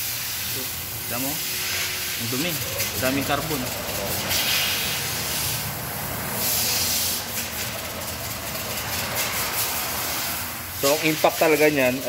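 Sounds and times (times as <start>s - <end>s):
steady hiss: 0.0s - 8.2s.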